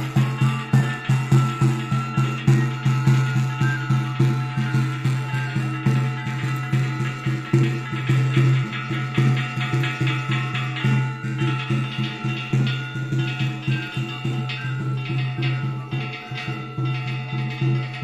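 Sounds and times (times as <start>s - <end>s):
drum beaten in quick rhythm: 0.0s - 18.0s.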